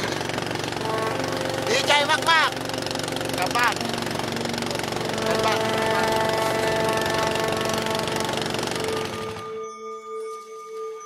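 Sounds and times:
boat engine chugging: 0.0s - 9.6s
music with long held notes: 0.0s - 11.0s.

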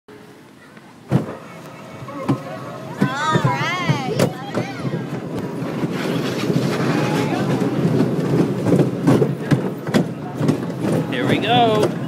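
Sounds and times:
roller coaster running noise: 0.1s - 12.0s
roller coaster heavy clunk: 1.0s - 12.0s.

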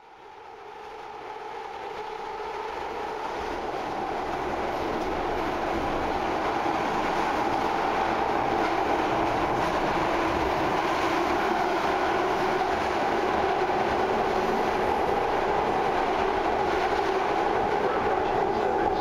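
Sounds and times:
train running through tunnel: 0.0s - 19.0s.

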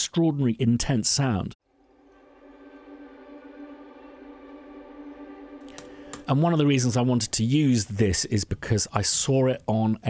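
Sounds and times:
strings bowed col legno: 1.6s - 8.0s.

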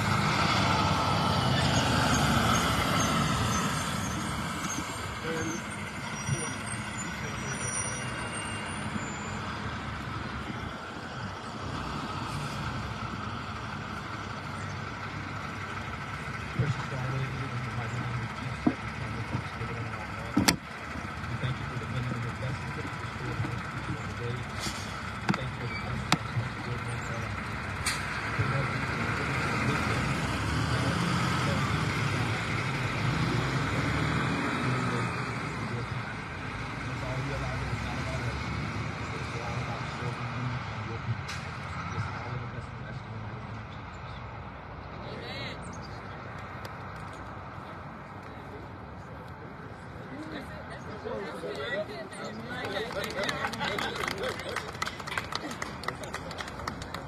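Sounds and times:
road traffic: 0.0s - 57.0s
truck engine pulling away: 0.0s - 57.0s.

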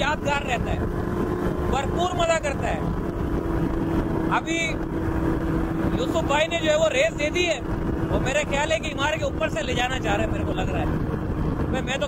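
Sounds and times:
engine and propeller droning: 0.0s - 12.0s.

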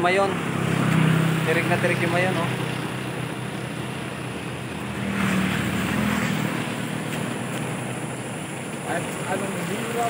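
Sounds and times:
low engine hum: 0.0s - 10.0s
vehicle passing by: 0.0s - 10.0s.

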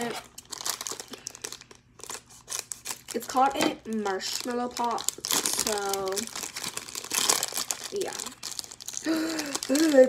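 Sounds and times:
candy wrapper crinkling: 0.0s - 10.0s.

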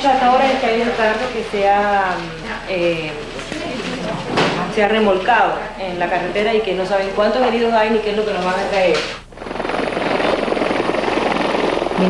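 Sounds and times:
helicopter rotor beating: 0.0s - 12.0s.

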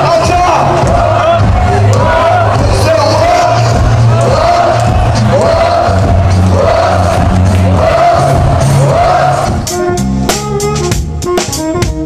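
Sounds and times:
crowd noise: 0.0s - 12.0s
dance music with bass line: 0.0s - 12.0s.

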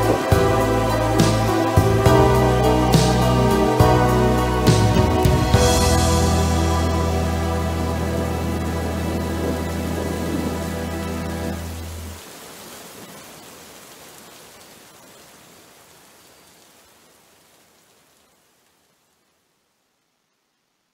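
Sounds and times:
held chord with deep bass: 0.0s - 12.2s
steady rain: 0.0s - 20.9s.

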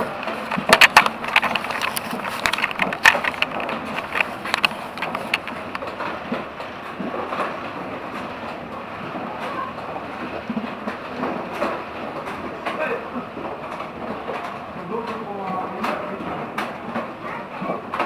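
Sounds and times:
track clicks: 0.0s - 7.6s
ride car running on rails: 0.0s - 18.0s.

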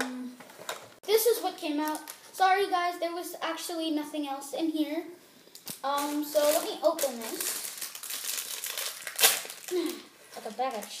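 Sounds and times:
plastic bag crinkling: 1.8s - 2.3s, 5.6s - 11.0s.

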